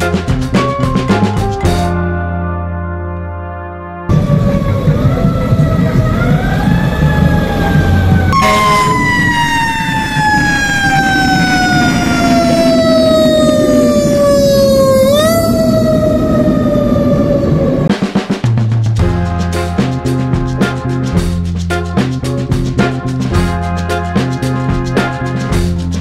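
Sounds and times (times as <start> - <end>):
fire siren wailing: 4.1 - 17.9
street traffic: 4.1 - 17.9.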